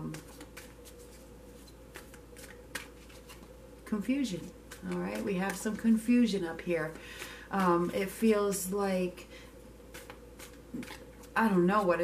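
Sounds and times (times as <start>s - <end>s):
cards being shuffled: 0.0s - 8.2s, 9.9s - 12.0s.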